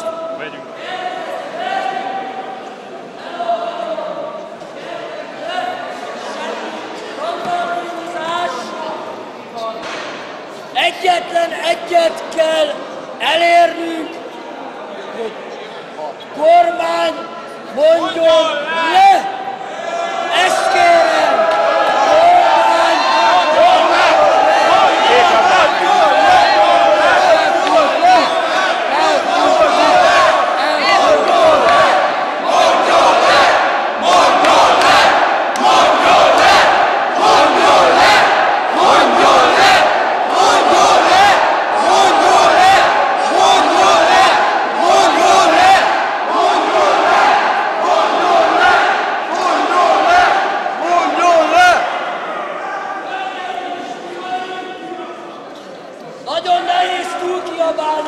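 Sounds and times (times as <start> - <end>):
crowd shouting in echoing hall: 0.0 - 58.0.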